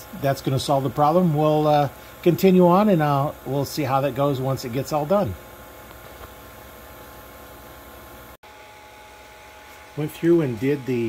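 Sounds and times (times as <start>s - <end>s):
vacuum pump humming and hissing: 0.0s - 11.0s.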